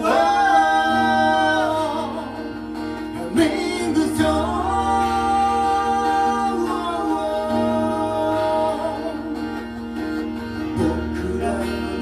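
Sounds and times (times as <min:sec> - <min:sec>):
acoustic guitar: 0:00.0 - 0:12.0
men singing: 0:00.0 - 0:12.0.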